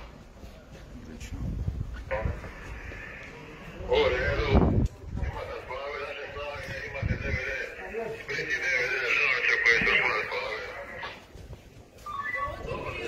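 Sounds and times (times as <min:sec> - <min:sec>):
people talking: 0:03.3 - 0:11.2, 0:12.0 - 0:13.0
high wavering cry: 0:12.0 - 0:13.0.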